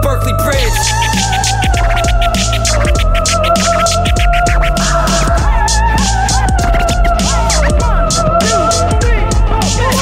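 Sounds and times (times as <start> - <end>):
hip hop beat: 0.0 - 10.0
turntable scratching: 0.6 - 9.0.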